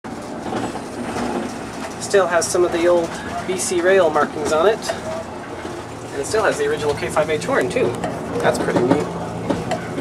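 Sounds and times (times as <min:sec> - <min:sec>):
rail car cabin rumble: 0:00.0 - 0:10.0.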